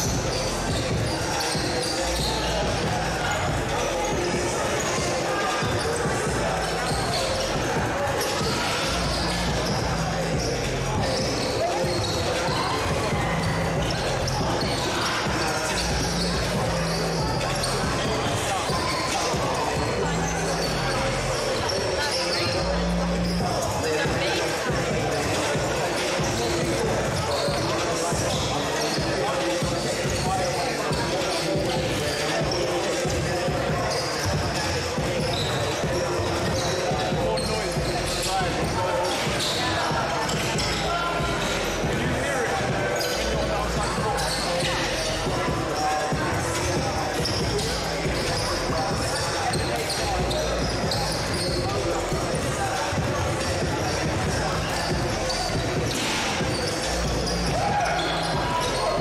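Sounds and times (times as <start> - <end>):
crowd chattering in echoing hall: 0.0 - 59.0.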